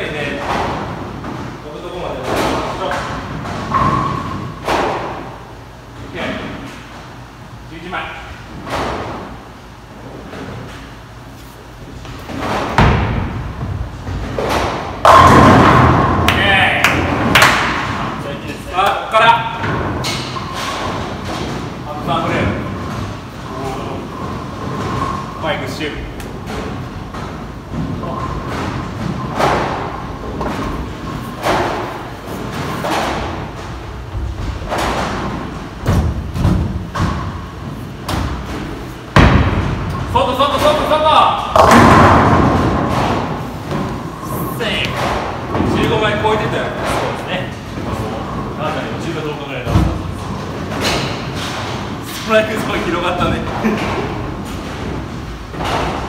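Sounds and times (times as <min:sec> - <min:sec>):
bowling ball rolling: 0:11.9 - 0:18.2, 0:19.6 - 0:56.0
bowling pins crashing: 0:12.0 - 0:18.4, 0:19.4 - 0:56.0.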